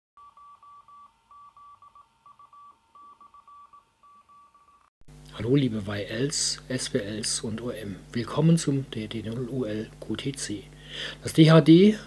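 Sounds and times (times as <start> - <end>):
morse code beeps: 0.2 - 4.9.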